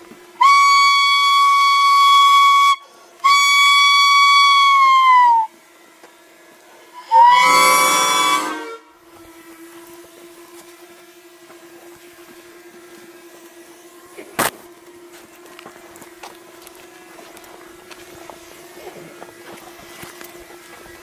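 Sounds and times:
faint drone hum: 0.0s - 21.0s
whistle blasts: 0.4s - 5.5s, 7.0s - 8.9s.

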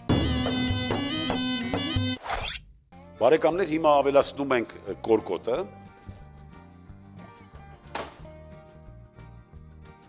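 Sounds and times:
reedy folk woodwind music: 0.1s - 2.2s.

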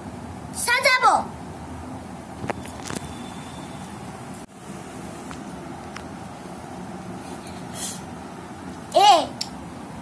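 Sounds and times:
steady background hum: 0.0s - 10.0s
short hiss: 7.4s - 8.1s.

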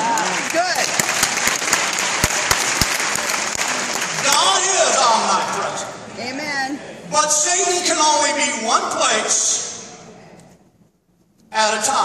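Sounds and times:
loud single claps: 0.0s - 4.5s
crowd applauding: 0.0s - 5.9s.

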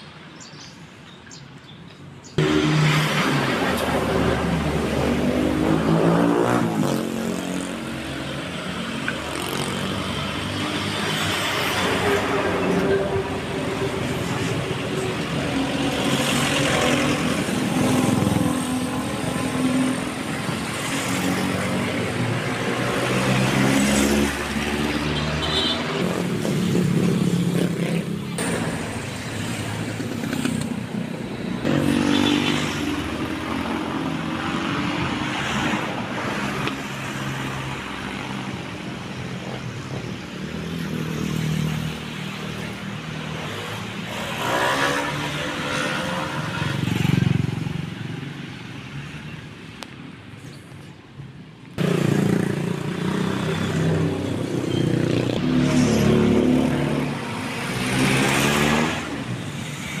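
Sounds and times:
street din: 0.0s - 60.0s
cars passing: 2.1s - 60.0s
motorcycles passing: 2.3s - 60.0s.

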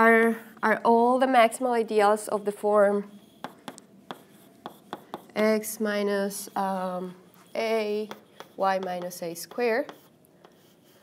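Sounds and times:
chalk tapping on blackboard: 3.2s - 5.4s, 7.3s - 11.0s.

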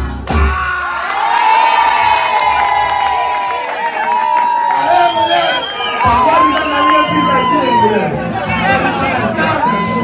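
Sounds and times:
audience cheering: 0.3s - 10.0s.

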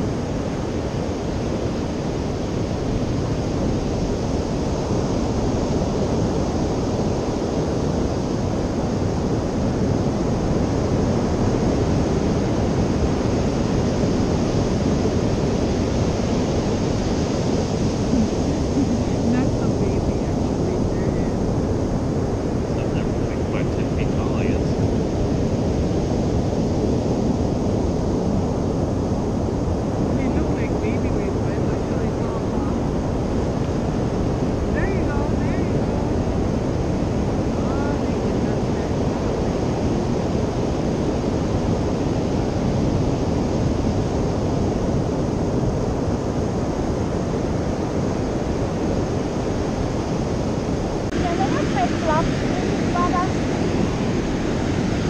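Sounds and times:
ocean surf breaking on beach: 0.0s - 55.0s.

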